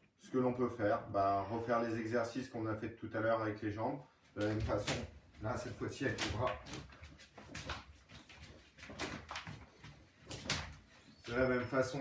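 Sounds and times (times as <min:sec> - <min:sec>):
bare feet shifting on wooden floor: 0:04.4 - 0:11.2.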